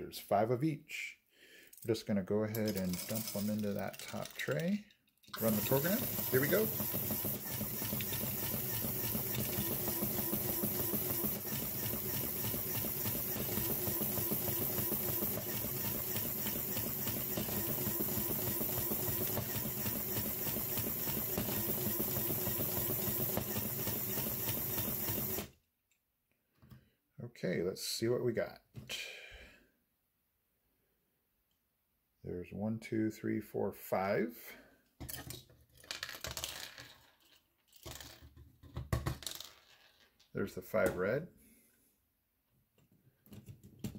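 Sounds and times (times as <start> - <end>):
plastic pins clattering on table: 2.5 - 6.0, 35.0 - 40.3
plastic pieces rattling in sorter: 2.5 - 25.3, 35.1 - 40.3.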